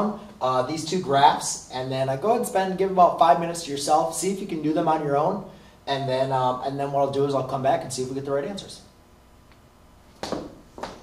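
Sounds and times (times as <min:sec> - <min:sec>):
footsteps on floor: 0:10.2 - 0:11.0.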